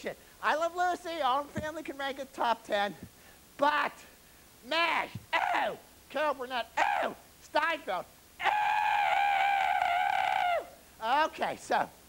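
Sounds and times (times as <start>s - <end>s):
person crying oooh: 8.4s - 10.8s.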